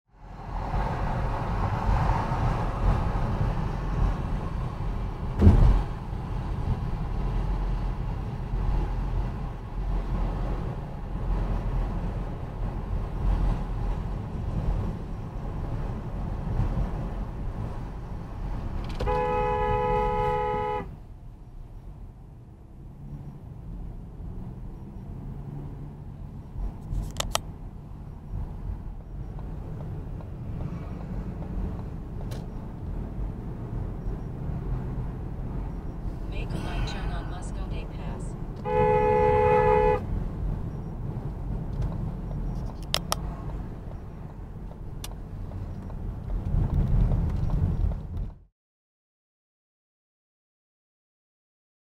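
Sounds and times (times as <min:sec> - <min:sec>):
car road and engine rumble: 0:00.1 - 0:48.5
sharp knock: 0:05.4 - 0:05.9
two-note car horn: 0:19.0 - 0:20.9, 0:38.6 - 0:40.0.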